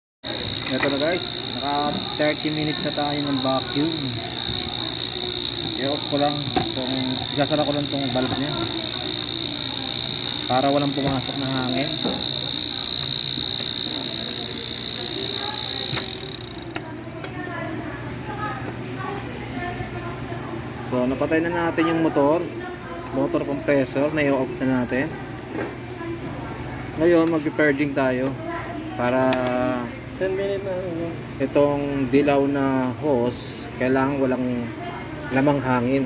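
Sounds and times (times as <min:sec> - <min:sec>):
vacuum pump motor whining: 0:00.2 - 0:16.9.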